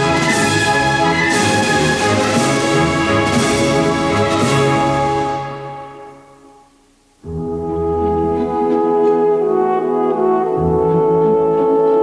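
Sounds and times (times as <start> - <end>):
orchestral music with brass: 0.0 - 12.0.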